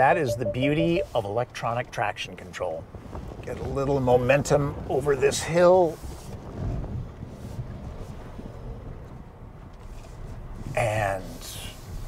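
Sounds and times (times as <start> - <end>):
low rumble of engine and tyres: 1.4 - 12.0
wind noise on microphone: 2.8 - 10.8.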